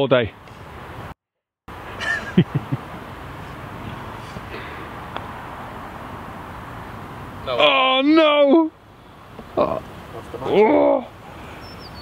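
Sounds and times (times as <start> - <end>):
outdoor background noise: 0.0 - 12.0
man exclaiming loudly: 7.5 - 8.7, 9.6 - 11.1.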